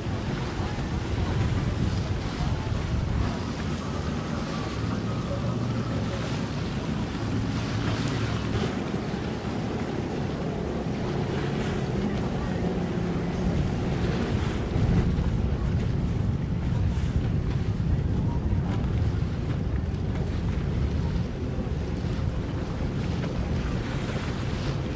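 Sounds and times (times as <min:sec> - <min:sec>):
low motor hum: 0:00.0 - 0:24.9
wind blowing across microphone: 0:00.0 - 0:24.9.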